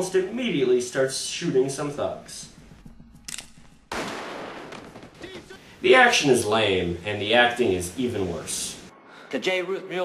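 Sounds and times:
loud blast: 0:03.9 - 0:05.4
gunshots cracking: 0:03.9 - 0:05.6.

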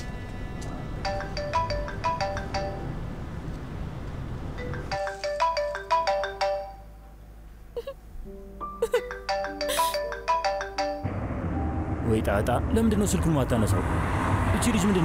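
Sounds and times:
mobile phone ringtone: 0:01.0 - 0:03.0, 0:04.6 - 0:07.2, 0:08.9 - 0:11.1.

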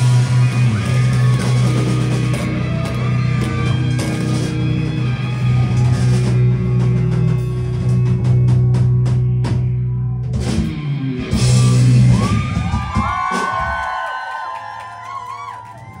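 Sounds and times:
bending guitar notes: 0:00.0 - 0:13.0
live rock band: 0:00.0 - 0:14.2
rapid drum hits: 0:11.4 - 0:14.0.

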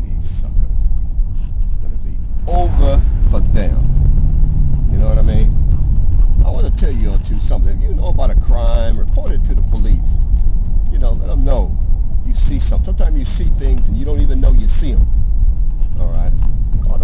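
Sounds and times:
man talking: 0:00.0 - 0:00.9, 0:01.7 - 0:03.9, 0:04.9 - 0:05.6, 0:06.4 - 0:10.2, 0:10.9 - 0:15.1, 0:16.0 - 0:17.0
car engine and tyres rumbling: 0:00.0 - 0:17.0.

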